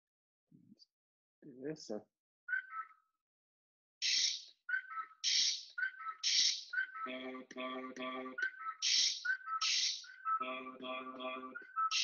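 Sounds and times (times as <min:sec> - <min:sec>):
whistle-like chirps: 0:04.0 - 0:07.1, 0:08.3 - 0:12.0.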